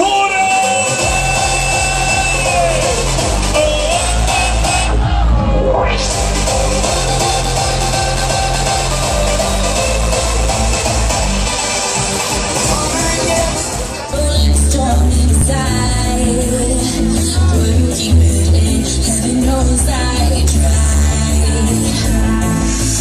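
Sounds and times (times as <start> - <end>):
electronic dance music: 0.0 - 23.0.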